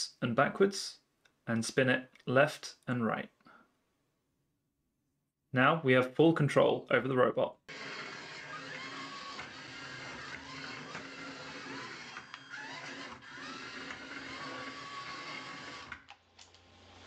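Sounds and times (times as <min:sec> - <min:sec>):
electric gear motors whirring: 0:07.7 - 0:17.0.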